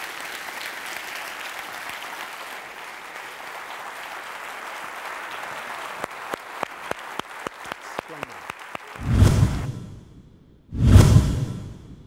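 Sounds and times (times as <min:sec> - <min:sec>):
deep whoosh: 0:09.0 - 0:12.0.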